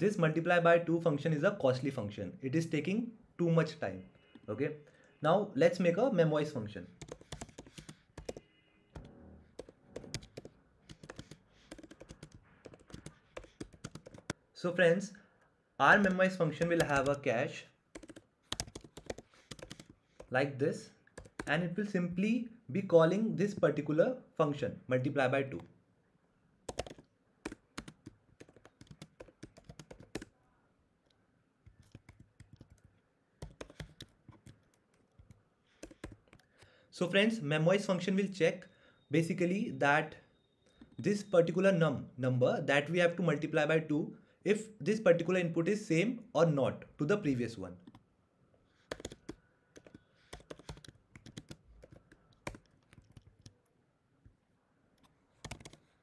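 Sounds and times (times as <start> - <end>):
typing on computer keyboard: 7.0 - 8.4, 9.0 - 14.4, 16.0 - 17.3, 17.9 - 20.3, 21.1 - 21.5, 26.7 - 30.3, 31.7 - 36.7, 48.8 - 53.6, 55.0 - 55.9.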